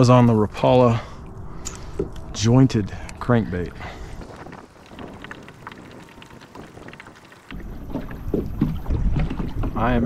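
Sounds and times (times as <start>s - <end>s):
wind on microphone: 1.4s - 10.0s
water splashes around kayak: 3.8s - 10.0s.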